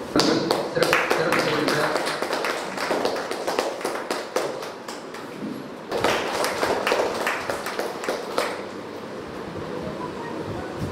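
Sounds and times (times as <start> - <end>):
group of people clapping: 0.1 - 8.8.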